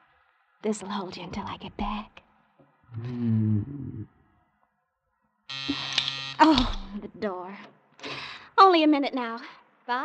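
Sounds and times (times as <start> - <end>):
door-release buzzer: 5.5 - 6.9.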